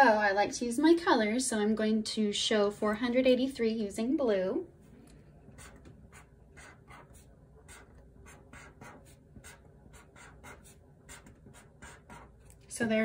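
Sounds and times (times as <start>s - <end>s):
marker drawing on paper: 5.5s - 12.5s.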